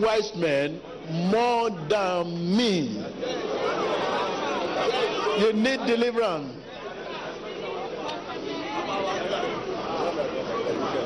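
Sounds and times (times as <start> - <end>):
crowd chatter in large hall: 0.0 - 11.0.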